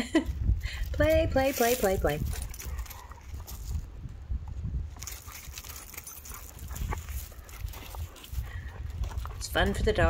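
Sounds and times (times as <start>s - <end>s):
dogs play growling: 2.4s - 3.7s, 5.1s - 9.4s.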